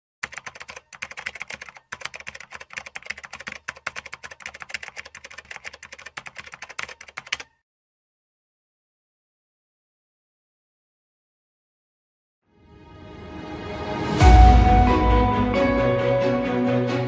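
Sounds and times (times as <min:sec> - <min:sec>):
keyboard key clicks typing: 0:00.2 - 0:07.6.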